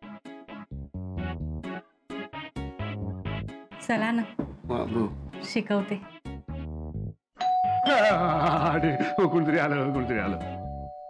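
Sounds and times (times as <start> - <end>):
electronic doorbell chime: 7.4 - 11.0.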